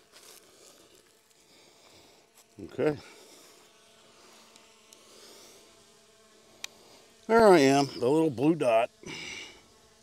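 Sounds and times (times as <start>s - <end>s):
drone propeller buzz: 0.0s - 10.0s.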